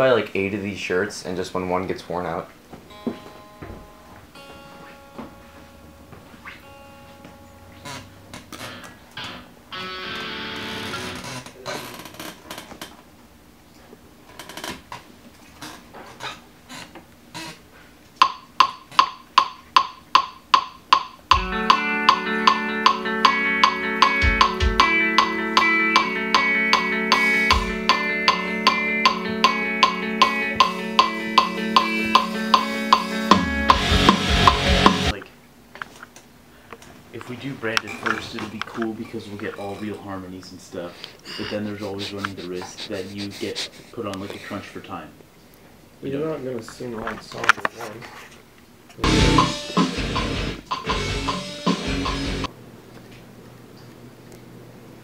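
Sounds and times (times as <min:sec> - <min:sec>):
electric guitar picked notes: 0:02.8 - 0:11.0, 0:21.3 - 0:35.2, 0:49.0 - 0:52.5
drums and bass metal mix: 0:21.3 - 0:35.2, 0:49.0 - 0:52.5.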